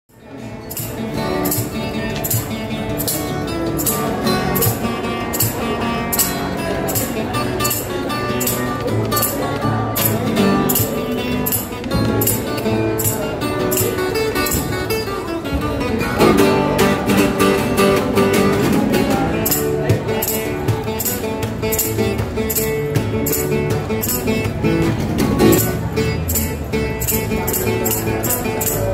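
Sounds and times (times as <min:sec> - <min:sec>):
fingerstyle acoustic guitar: 0:00.1 - 0:28.9.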